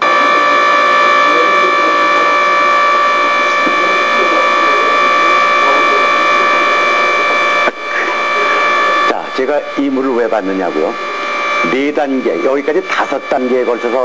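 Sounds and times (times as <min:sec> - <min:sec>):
water pump whine over hiss: 0:00.0 - 0:14.0.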